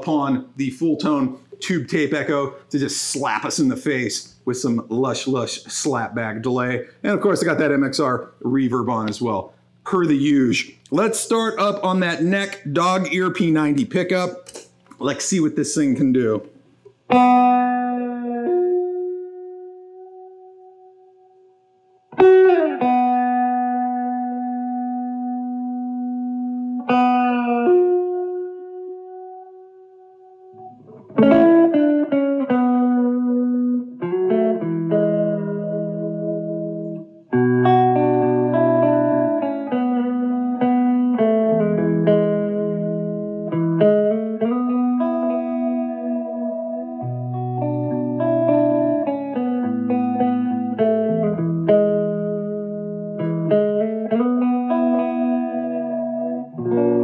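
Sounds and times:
clean electric guitar playing: 0:00.0 - 0:57.0.

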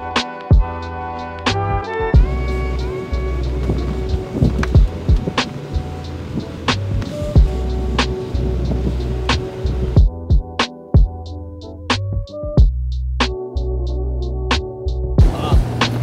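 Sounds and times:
background music with beat: 0:00.0 - 0:16.0.

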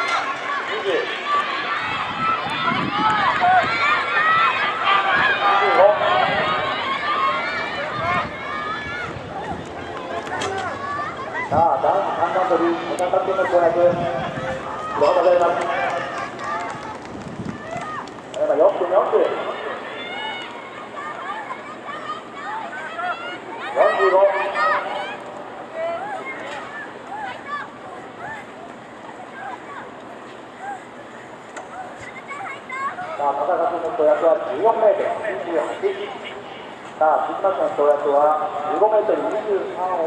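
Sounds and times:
open-air background noise: 0:00.0 - 0:40.0
voices calling out and talking: 0:00.0 - 0:40.0
announcer over loudspeakers: 0:11.6 - 0:16.0.

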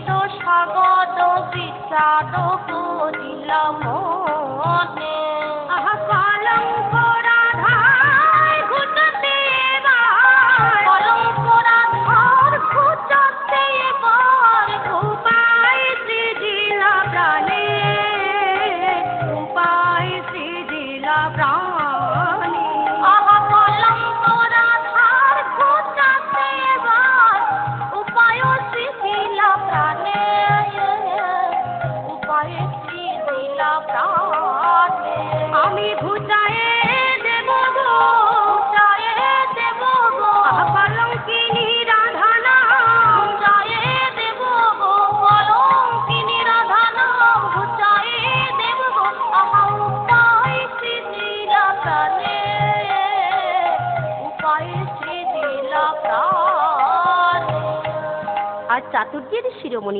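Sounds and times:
woman singing: 0:00.0 - 0:59.9.

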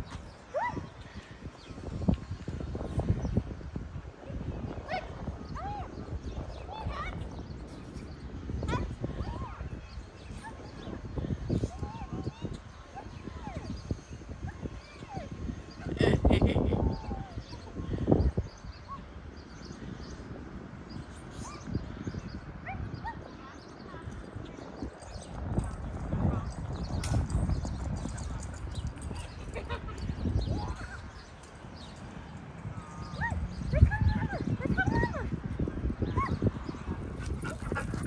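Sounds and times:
dogs barking and yipping: 0:36.1 - 0:38.0.

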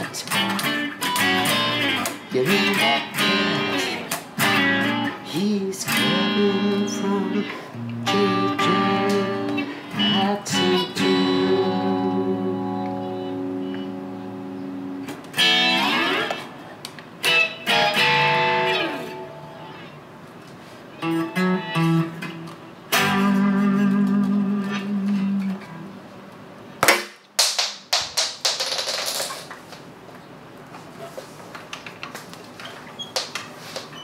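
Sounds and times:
electric guitar playing: 0:00.0 - 0:20.2, 0:20.9 - 0:26.2
sharp knocks and clatter: 0:26.8 - 0:29.7.

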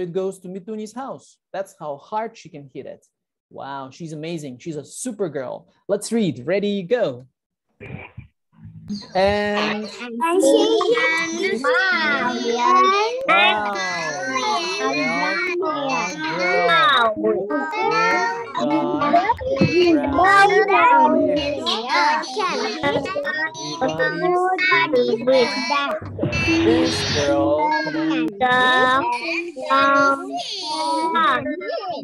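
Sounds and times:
children reading aloud in chorus: 0:09.7 - 0:32.0.

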